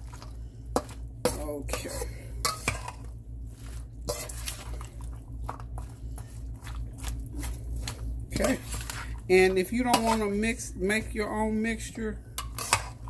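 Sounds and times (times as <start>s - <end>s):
steady low hum: 0.0s - 13.0s
metal spatula scraping a metal bowl: 0.8s - 4.9s, 12.4s - 13.0s.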